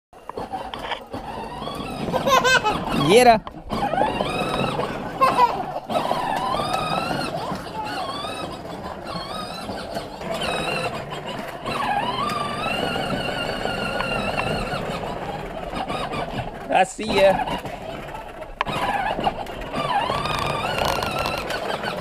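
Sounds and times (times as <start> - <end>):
plastic wheels rolling on concrete: 0.2 - 22.0
toy tractor motor whining: 0.2 - 22.0.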